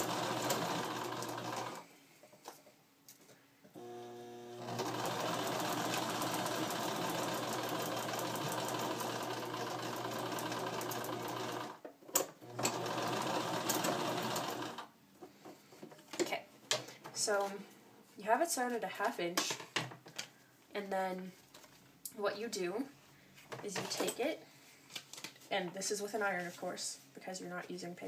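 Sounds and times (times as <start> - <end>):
sewing machine stitching paper: 0.0 - 1.8, 3.8 - 11.8, 12.4 - 14.9.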